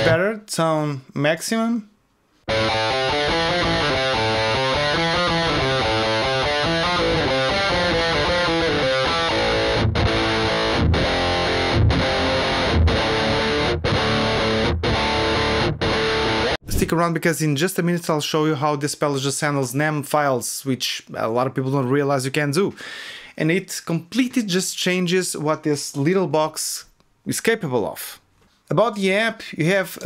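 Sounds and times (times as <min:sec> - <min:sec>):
distorted electric guitar: 0:00.0 - 0:00.2, 0:02.5 - 0:16.9.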